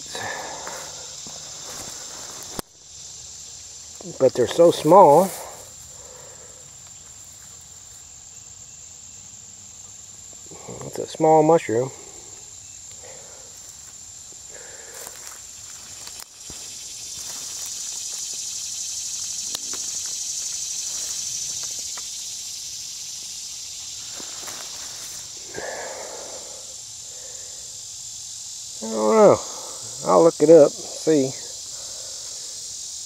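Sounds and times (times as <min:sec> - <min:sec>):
insects singing: 0:00.0 - 0:33.0.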